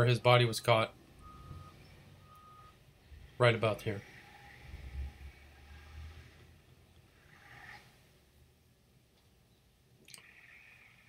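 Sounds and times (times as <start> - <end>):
faint beeps: 1.2 - 2.9.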